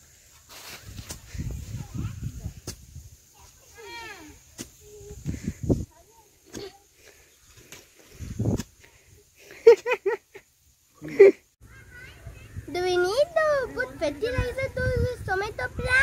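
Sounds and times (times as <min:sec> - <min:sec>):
hoe chopping into dry soil: 0:00.5 - 0:01.5, 0:02.5 - 0:03.0, 0:04.5 - 0:05.2.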